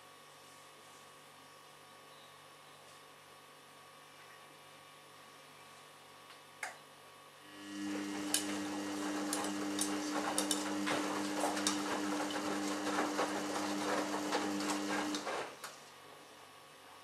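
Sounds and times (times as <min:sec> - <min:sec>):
washing machine motor hum: 0:07.4 - 0:16.0
laundry and water sloshing: 0:08.0 - 0:15.6.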